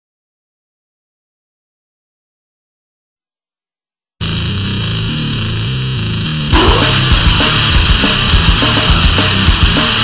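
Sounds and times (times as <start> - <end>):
distorted electric guitar riff: 4.2 - 10.0.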